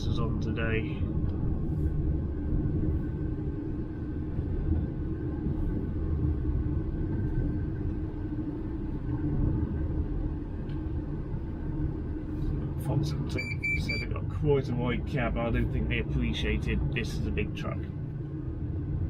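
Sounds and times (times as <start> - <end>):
truck engine and road rumble: 0.0 - 19.0.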